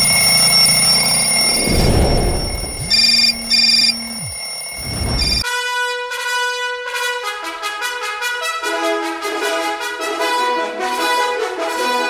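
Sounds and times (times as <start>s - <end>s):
bell alarm clock ringing: 0.0s - 5.4s
short beeps: 0.0s - 5.4s
trumpet-led music: 5.4s - 12.0s.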